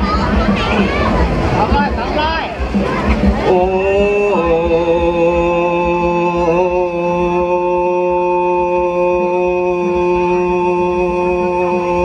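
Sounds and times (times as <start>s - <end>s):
man singing long note through speakers: 3.4s - 12.0s.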